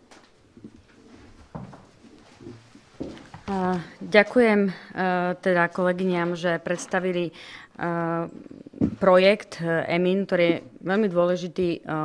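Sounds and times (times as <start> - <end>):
people shuffling around: 0.0 - 4.8.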